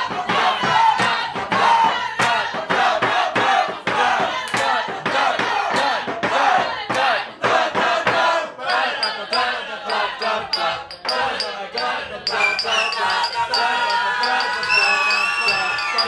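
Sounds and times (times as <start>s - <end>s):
people singing a cappella: 0.0s - 16.0s
sharp percussive strikes: 0.0s - 16.0s.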